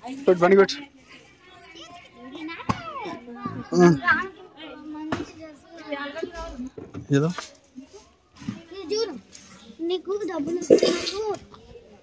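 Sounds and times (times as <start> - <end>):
women and child talking: 0.0 - 6.8, 7.4 - 12.0.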